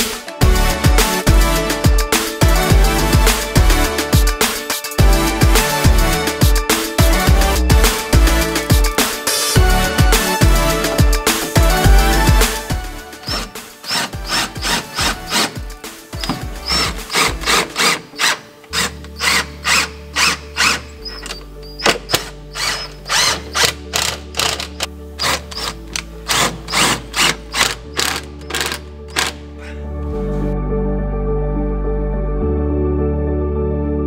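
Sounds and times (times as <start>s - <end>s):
background music with beat: 0.0s - 29.4s
impact driver driving screws: 13.2s - 15.6s, 16.2s - 29.4s.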